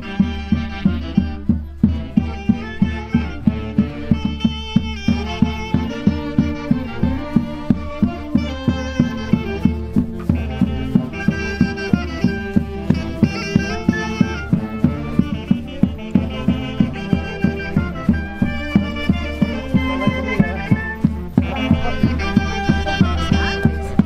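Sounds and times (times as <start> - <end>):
folk dance music: 0.0 - 24.0.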